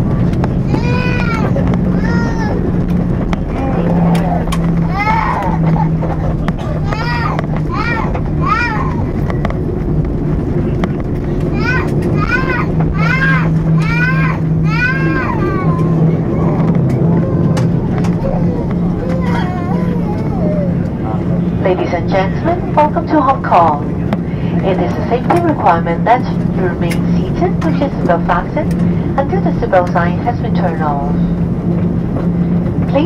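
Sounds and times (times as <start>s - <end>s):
aircraft engine hum: 0.0s - 33.0s
low rumble of wheels and airframe: 0.0s - 33.0s.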